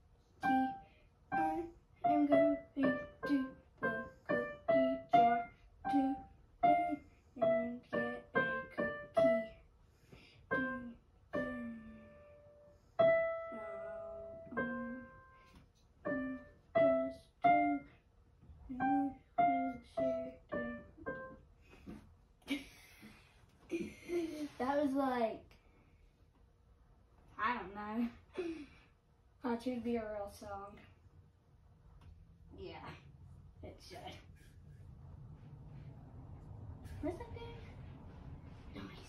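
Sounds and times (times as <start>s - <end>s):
slow digital piano melody: 10.5s - 17.9s, 18.7s - 21.5s.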